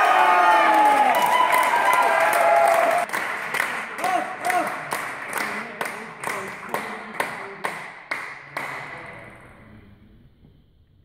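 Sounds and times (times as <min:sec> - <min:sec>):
audience applause: 0:00.0 - 0:08.8
sharp claps: 0:00.7 - 0:09.1.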